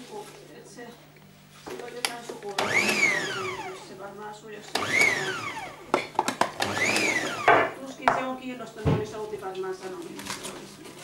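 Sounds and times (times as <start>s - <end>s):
electric chopper motor whining: 2.6s - 4.0s, 4.7s - 6.0s, 6.6s - 7.6s.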